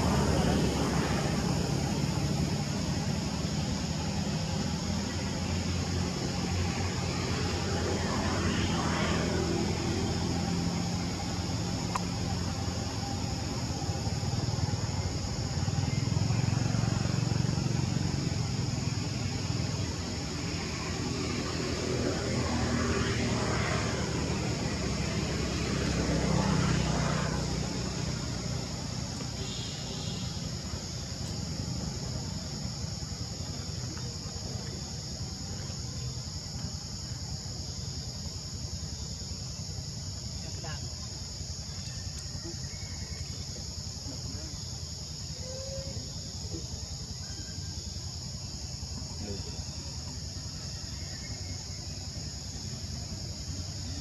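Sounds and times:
insects droning: 0.0s - 54.0s
passing traffic: 0.0s - 54.0s.

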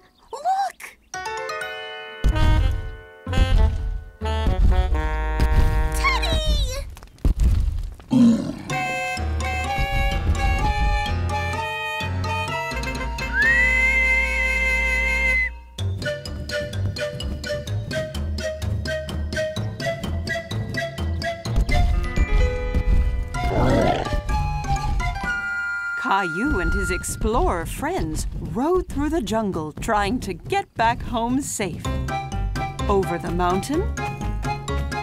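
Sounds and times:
background music with held notes: 1.1s - 6.1s, 8.7s - 27.4s, 31.4s - 35.0s
low thuds: 2.3s - 8.2s, 9.4s - 11.4s
cartoon dinosaur growl: 8.1s - 9.0s, 23.4s - 24.2s.

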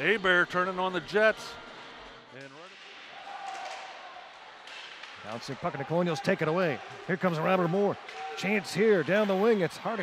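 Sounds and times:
hockey sticks clacking on puck: 2.4s - 4.0s, 4.6s - 9.7s.

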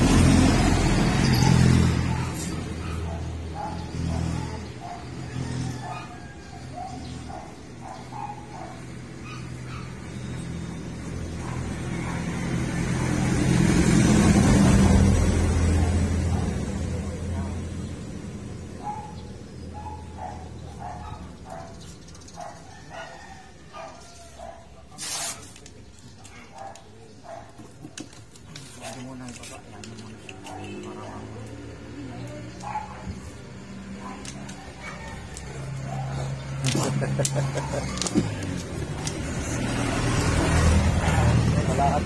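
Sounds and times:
vehicle engine passing: 0.0s - 21.6s, 27.7s - 42.0s.

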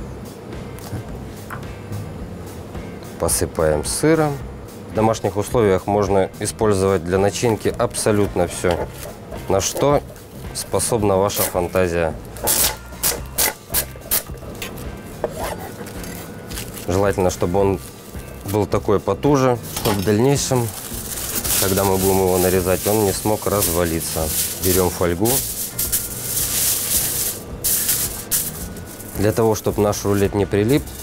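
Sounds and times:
film rubbing on cutting board: 7.4s - 10.3s, 19.6s - 29.4s
cling film rustling and crinkling: 7.4s - 10.7s, 11.3s - 18.8s, 19.6s - 31.0s.

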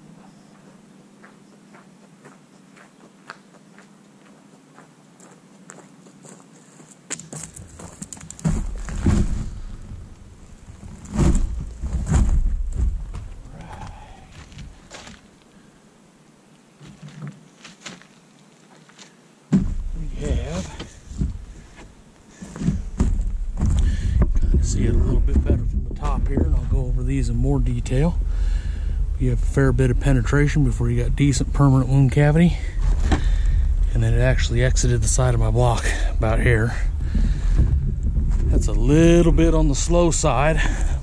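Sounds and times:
footsteps on gravel: 0.5s - 15.5s, 16.8s - 26.9s
handling noise on microphone: 7.2s - 15.3s, 16.8s - 41.0s.

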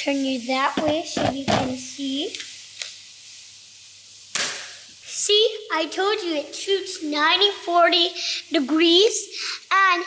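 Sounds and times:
toy blaster pop: 4.3s - 4.8s.

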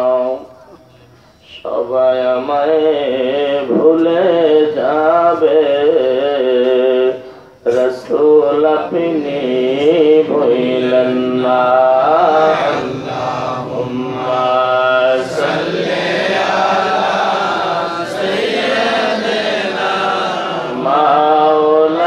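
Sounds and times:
man chanting into a microphone: 0.0s - 15.6s, 20.6s - 22.0s.

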